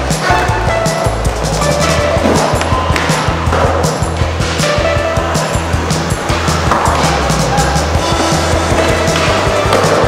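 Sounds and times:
loud music with steady beat: 0.0s - 10.0s
skateboard wheels rolling on concrete: 0.0s - 10.0s.

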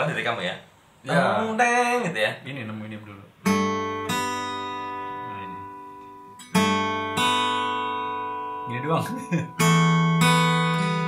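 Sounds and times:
acoustic guitar chords ringing: 3.4s - 11.0s.

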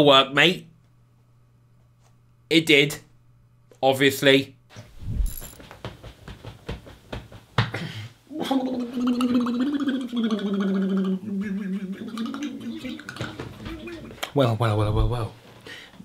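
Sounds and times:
man's long wordless vocal noise: 8.3s - 13.2s.

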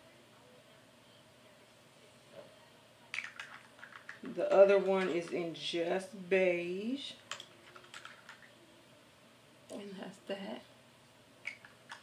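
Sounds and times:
small cosmetic pot clicking: 3.1s - 5.4s.

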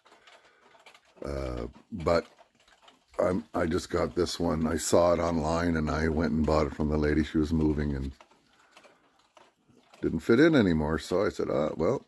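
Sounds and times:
pendulum clock ticking: 0.0s - 12.0s.

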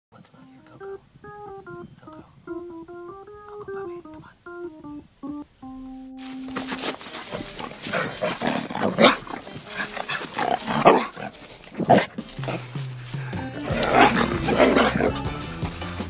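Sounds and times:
keyboard melody: 0.2s - 16.0s.

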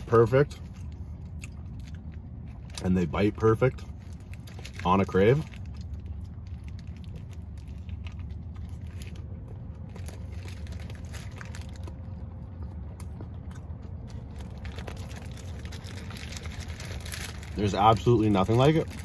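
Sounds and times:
biting and chewing burger: 0.0s - 19.0s
low hum: 0.0s - 19.0s.

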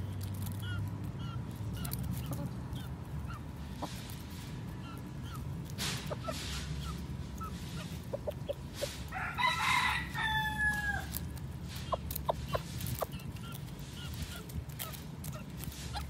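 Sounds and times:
chicken clucks: 0.3s - 16.0s
rooster crowing: 9.1s - 11.2s.

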